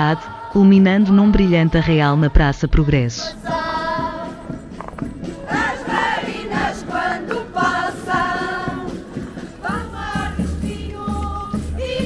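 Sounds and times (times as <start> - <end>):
folk group singing in unison: 0.0 - 2.3, 3.2 - 12.0.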